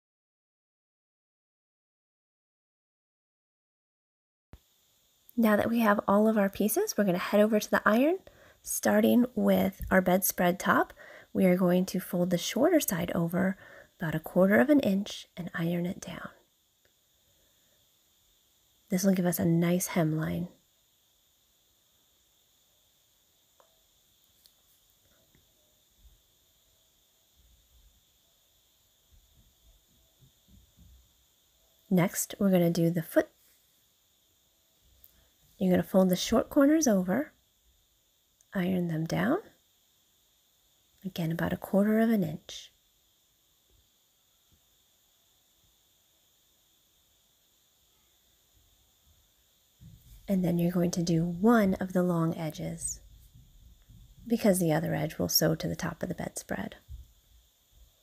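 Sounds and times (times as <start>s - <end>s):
faint room hiss: 4.6s - 58.0s.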